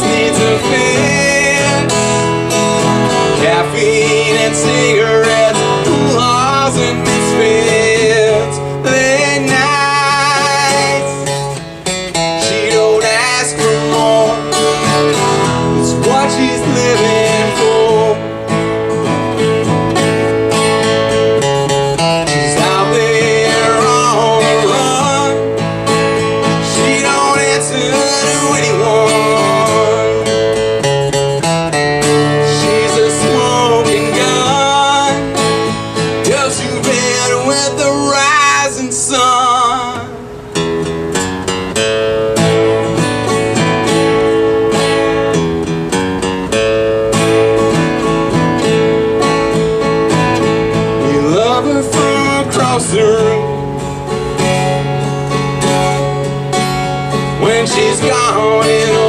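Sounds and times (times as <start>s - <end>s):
man singing: 0.0s - 18.6s, 22.2s - 30.9s, 32.0s - 40.5s, 50.9s - 53.8s, 57.2s - 59.0s
acoustic guitar strumming: 0.0s - 59.0s.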